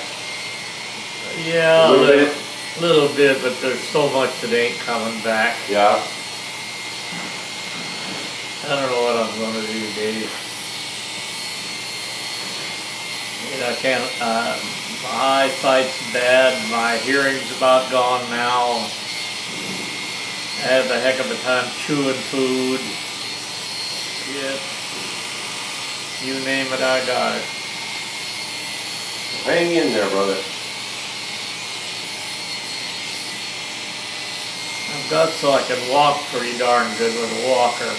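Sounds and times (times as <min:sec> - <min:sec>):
electric hair clippers running: 0:00.0 - 0:37.9.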